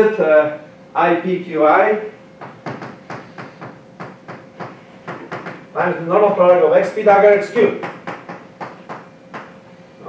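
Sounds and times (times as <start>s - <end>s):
chalk tapping on blackboard: 2.4s - 5.6s.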